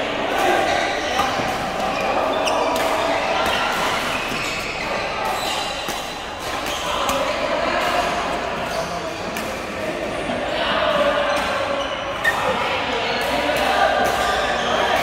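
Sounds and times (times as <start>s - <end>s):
players' voices and chatter: 0.0s - 15.0s
rackets striking shuttlecocks: 5.6s - 8.2s.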